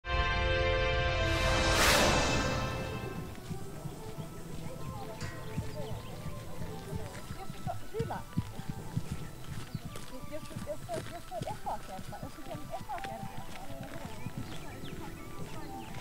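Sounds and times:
people talking: 2.8 - 16.0
horse hoofbeats on grass: 3.3 - 16.0.

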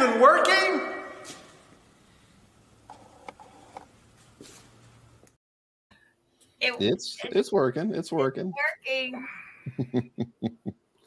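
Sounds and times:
faint low hum: 6.0 - 11.0.

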